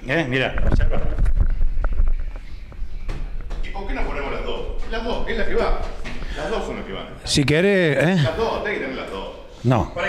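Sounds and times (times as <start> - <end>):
microphone handling thumps: 0.5 - 6.4.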